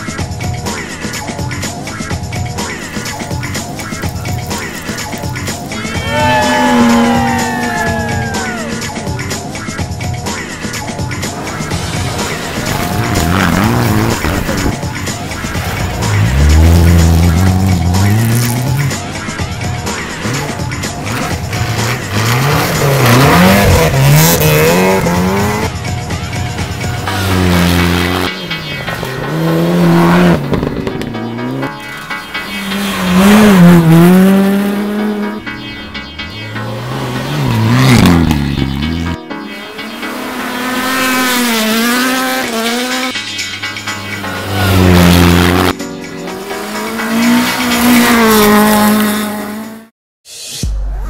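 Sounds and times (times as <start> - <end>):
rally cars passing revving: 2.6 - 49.9.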